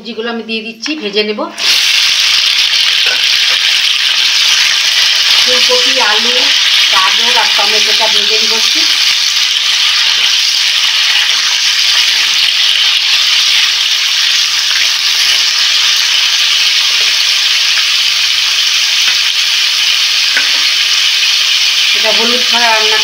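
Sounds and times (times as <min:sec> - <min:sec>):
vegetables sizzling in hot oil: 0:01.6 - 0:23.0.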